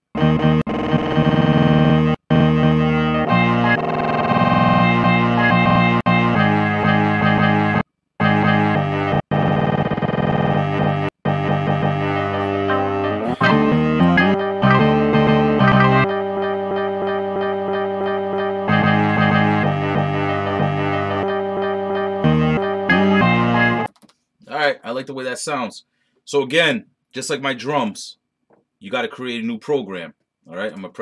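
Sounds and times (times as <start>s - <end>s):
sampled instrumental notes: 0.0s - 23.9s.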